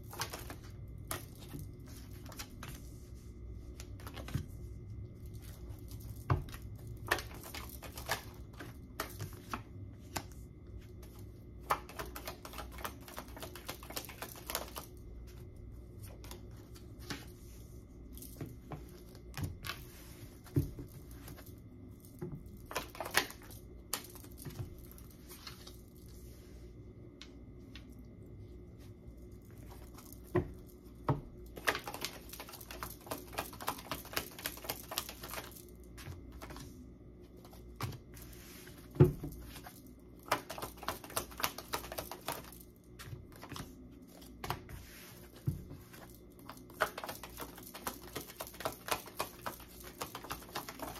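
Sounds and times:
cards being shuffled: 0:00.0 - 0:02.9, 0:05.2 - 0:15.4, 0:16.0 - 0:26.1, 0:29.5 - 0:36.7, 0:37.4 - 0:50.9.

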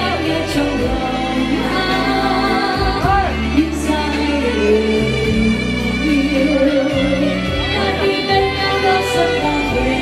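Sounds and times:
saxophone melody: 0:00.0 - 0:10.0.

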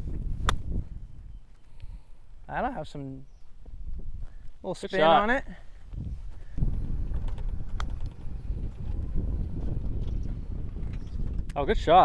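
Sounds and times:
wind buffeting microphone: 0:00.0 - 0:12.0
golf club striking ball: 0:00.4 - 0:00.7.

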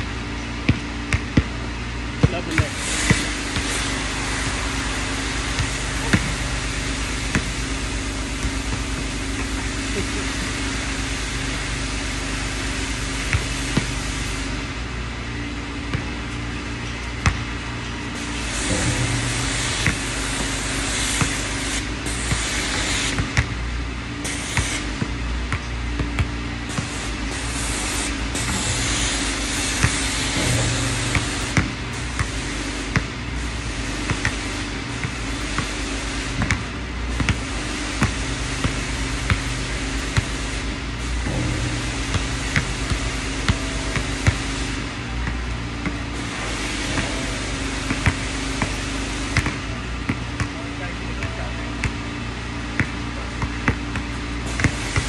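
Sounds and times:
steady low hum: 0:00.0 - 0:55.0
basketball bouncing on hard court: 0:00.6 - 0:09.8, 0:10.5 - 0:14.2, 0:15.8 - 0:17.7, 0:18.6 - 0:23.7, 0:24.3 - 0:27.4, 0:28.0 - 0:40.6, 0:41.2 - 0:55.0
basketball striking hoop: 0:00.6 - 0:50.6, 0:51.2 - 0:55.0.

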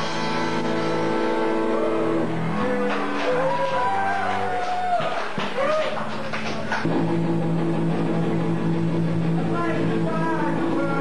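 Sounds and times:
electric guitar chords ringing: 0:00.0 - 0:03.2, 0:06.9 - 0:11.0
rock band playing: 0:00.0 - 0:11.0.

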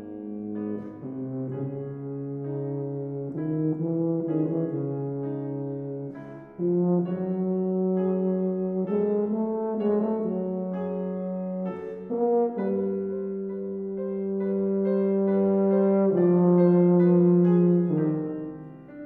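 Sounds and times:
tuba playing slow melody: 0:00.0 - 0:19.0.

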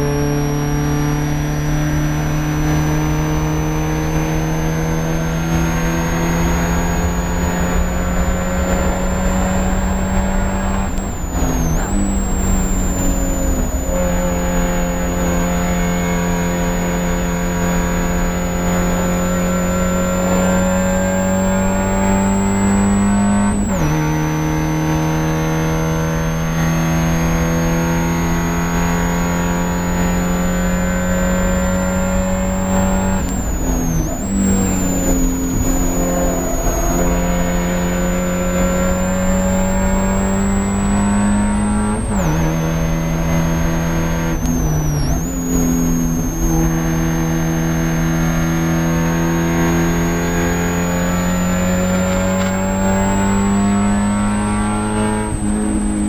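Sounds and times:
race car engine at high revs: 0:00.0 - 0:56.0
thin high whine: 0:02.4 - 0:24.2, 0:29.9 - 0:56.0.

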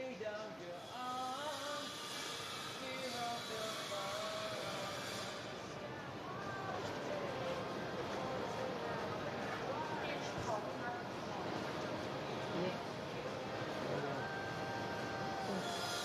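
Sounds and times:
snatches of singing: 0:00.3 - 0:05.8
faint voices: 0:02.6 - 0:16.0.

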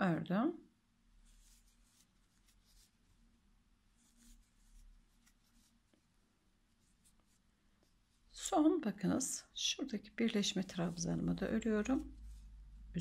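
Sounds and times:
yarn rustling on crochet hook: 0:01.2 - 0:03.3, 0:03.9 - 0:13.0.

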